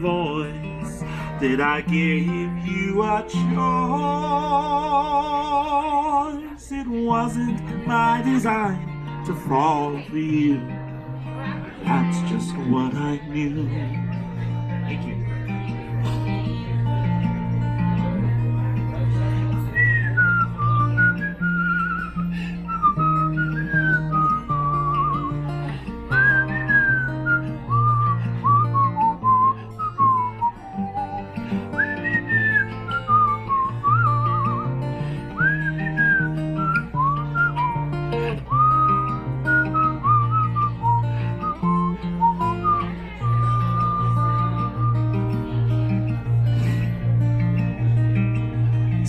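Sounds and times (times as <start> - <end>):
acoustic guitar picking bass notes: 0.0 - 49.0
man whistling a melody: 19.2 - 46.3.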